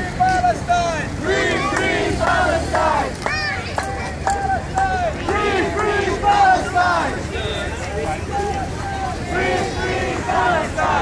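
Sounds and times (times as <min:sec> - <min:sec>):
crowd of protesters shouting: 0:00.0 - 0:11.0.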